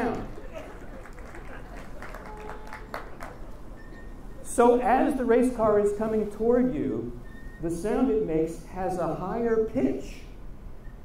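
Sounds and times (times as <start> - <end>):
audience clapping: 0.0 - 3.8
quiet murmurs: 0.0 - 8.6.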